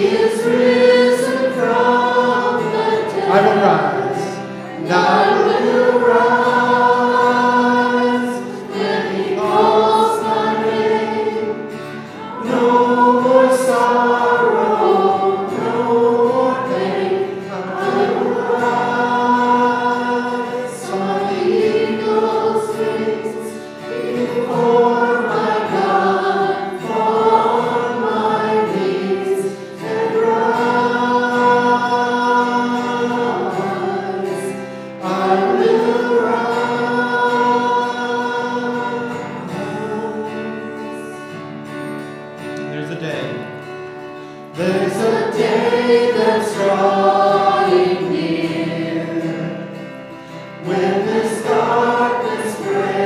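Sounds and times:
group singing worship song: 0.0s - 42.5s, 44.1s - 53.0s.

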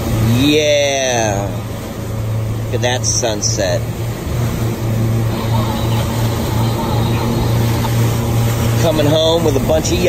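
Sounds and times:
boat wake rushing and splashing: 0.0s - 10.0s
outboard motors droning: 0.0s - 10.0s.

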